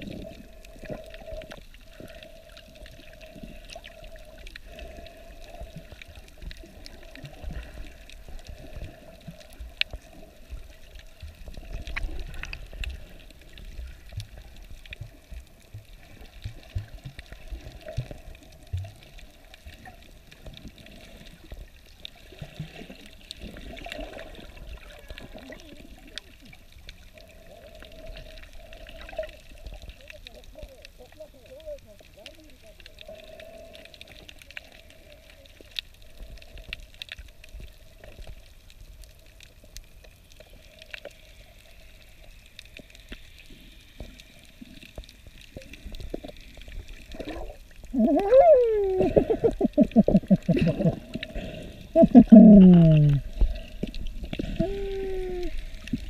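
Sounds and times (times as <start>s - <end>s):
underwater sloshing and bubbling: 0.0s - 56.0s.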